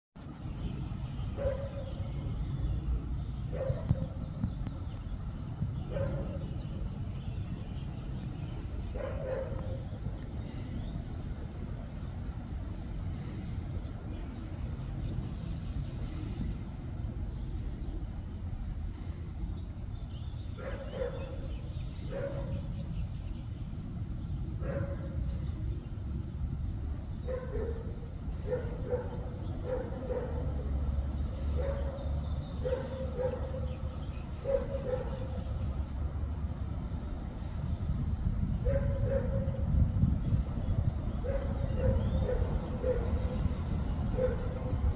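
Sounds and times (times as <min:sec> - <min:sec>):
steady low rumble: 0:00.2 - 0:31.4, 0:32.4 - 0:44.9
dog barking: 0:01.4 - 0:02.0, 0:03.5 - 0:04.1, 0:05.9 - 0:06.4, 0:08.9 - 0:09.8, 0:20.6 - 0:21.4, 0:22.1 - 0:22.7, 0:24.6 - 0:25.2, 0:27.3 - 0:30.6, 0:31.6 - 0:33.7, 0:34.4 - 0:35.4, 0:38.6 - 0:39.6, 0:41.2 - 0:43.4, 0:44.1 - 0:44.7.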